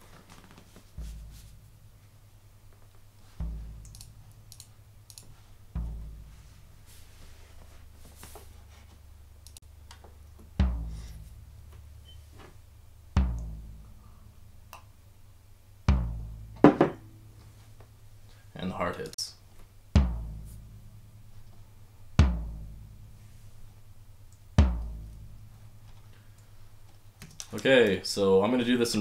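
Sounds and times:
floor tom hits: 0:01.0 - 0:02.0, 0:03.4 - 0:03.9, 0:05.8 - 0:06.8, 0:10.6 - 0:11.8, 0:13.2 - 0:14.0, 0:15.9 - 0:17.4, 0:20.0 - 0:21.1, 0:22.2 - 0:23.1, 0:24.6 - 0:25.9.

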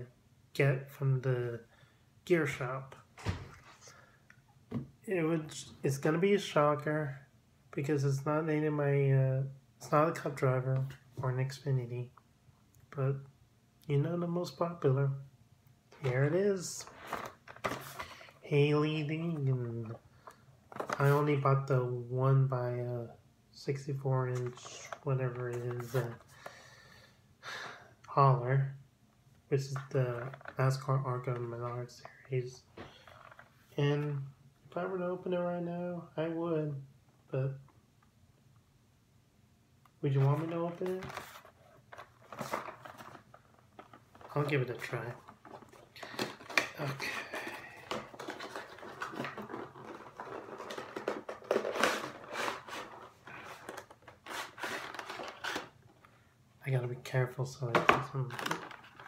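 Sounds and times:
man speaking: 0:00.0 - 0:01.7, 0:02.3 - 0:03.4, 0:05.0 - 0:12.2, 0:12.9 - 0:15.2, 0:16.0 - 0:16.9, 0:18.4 - 0:20.0, 0:20.9 - 0:26.2, 0:29.5 - 0:32.7, 0:33.7 - 0:37.6, 0:40.0 - 0:41.2, 0:44.2 - 0:45.3, 0:46.5 - 0:50.3, 0:56.6 - 0:58.6
man breathing: 0:26.3 - 0:28.0
packaging rustling and tearing: 0:40.2 - 0:56.0, 0:58.2 - 0:59.0.

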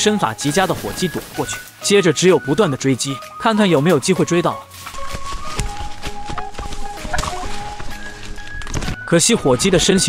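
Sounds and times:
leaves and brush rustling: 0:00.0 - 0:09.3
background music with held notes: 0:00.0 - 0:10.0
wild turkey calling: 0:07.0 - 0:08.5.

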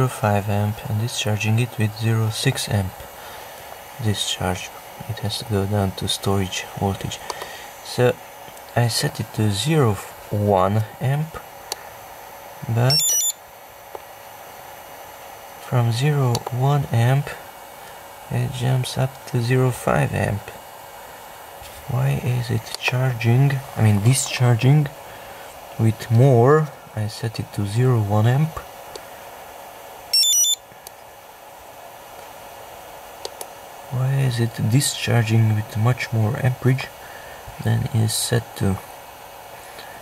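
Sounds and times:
faint steady hiss: 0:00.0 - 0:40.0
high electronic beeps: 0:12.9 - 0:13.4, 0:30.1 - 0:30.6.

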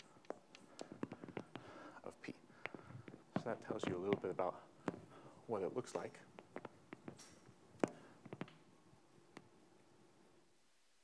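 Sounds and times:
chalk clicks and taps: 0:00.0 - 0:01.8.

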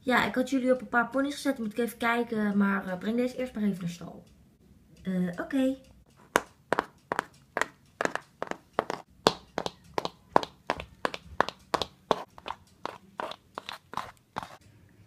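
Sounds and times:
toy hooves tapping on wooden floor: 0:06.1 - 0:14.5.

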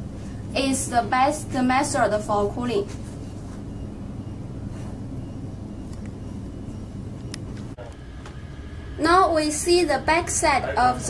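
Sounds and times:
cooling fans humming: 0:00.0 - 0:11.0.

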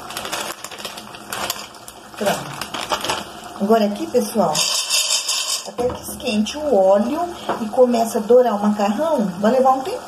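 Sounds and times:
dry pasta pouring into metal pot: 0:00.0 - 0:03.7, 0:04.5 - 0:05.8.

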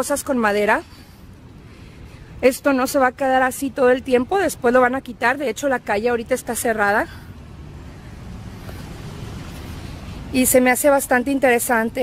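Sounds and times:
low rumble of street ambience: 0:00.0 - 0:12.0.

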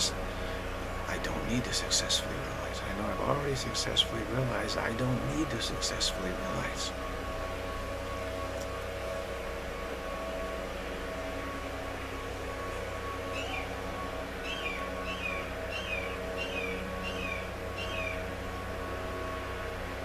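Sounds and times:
animal high calls: 0:13.3 - 0:13.7, 0:14.4 - 0:18.2.

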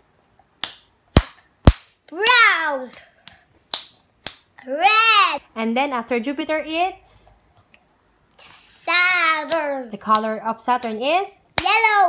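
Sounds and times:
child clapping hands: 0:00.6 - 0:04.5, 0:09.0 - 0:11.0, 0:11.6 - 0:12.0.

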